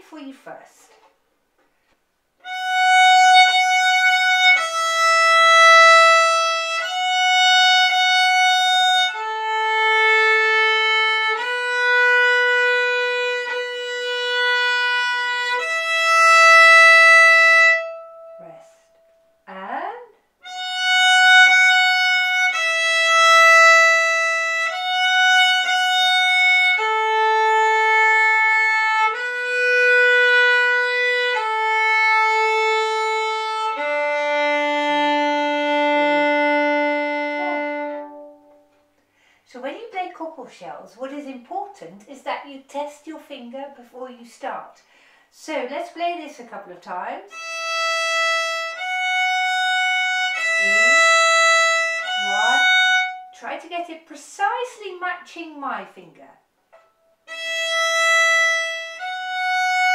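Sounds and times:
solo violin playing slow tune: 2.4s - 19.2s, 20.4s - 38.9s, 47.3s - 53.4s, 56.8s - 59.9s.

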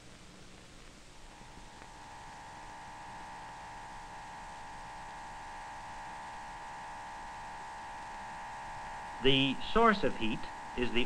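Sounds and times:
electrical hum: 0.0s - 11.0s
old film soundtrack hiss: 0.0s - 11.0s.

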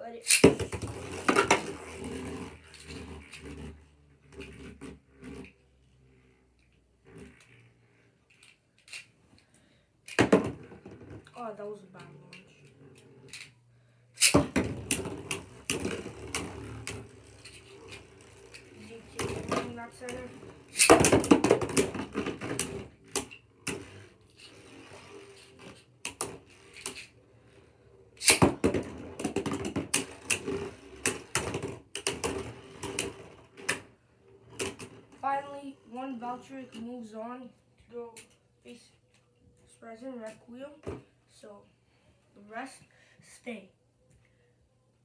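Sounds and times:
spinning tops whirring: 14.2s - 36.8s.

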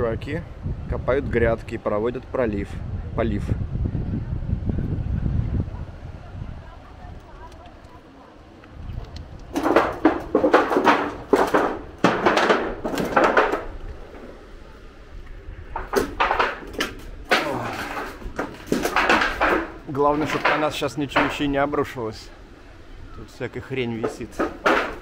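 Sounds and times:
footsteps on rubble and sheet metal: 7.1s - 22.0s, 23.6s - 25.0s.

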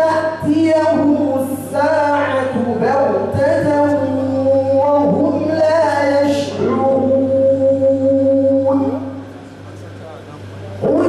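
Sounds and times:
man chanting melodically: 0.0s - 9.4s, 10.4s - 11.0s
steady low hum: 0.0s - 11.0s.

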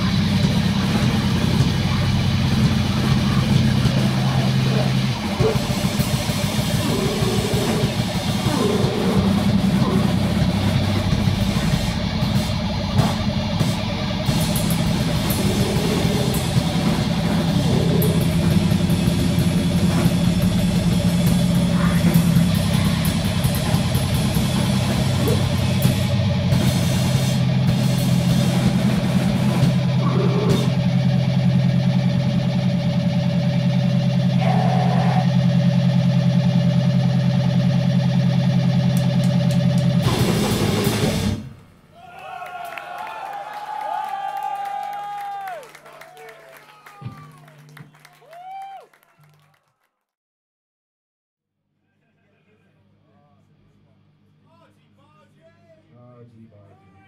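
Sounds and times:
droning guitar feedback: 0.0s - 41.2s.

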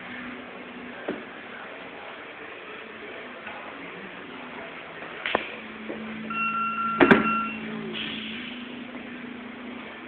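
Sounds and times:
steady high tone: 6.2s - 9.7s.

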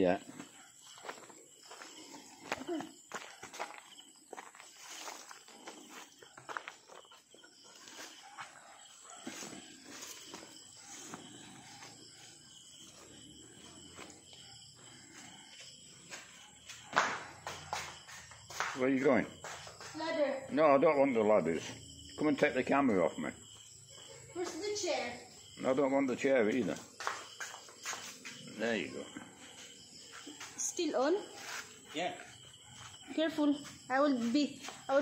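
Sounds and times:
footsteps on concrete: 0.2s - 20.4s, 26.6s - 35.0s.

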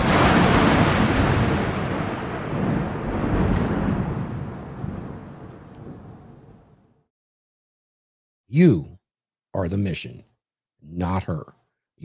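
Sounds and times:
rumbling thunder: 0.0s - 7.1s.

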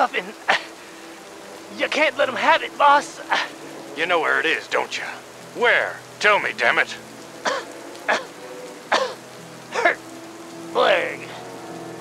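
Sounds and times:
steady rain: 0.0s - 12.0s.

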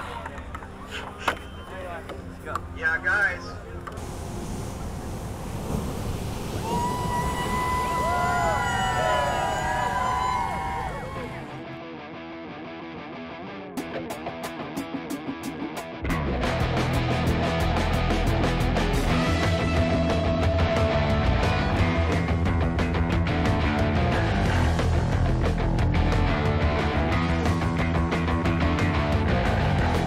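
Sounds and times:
heavy surf: 4.0s - 11.6s
loud rock guitar music: 11.1s - 30.0s.

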